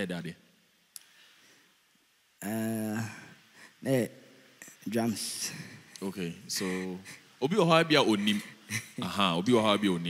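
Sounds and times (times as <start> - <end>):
man's voice: 4.7 - 10.0.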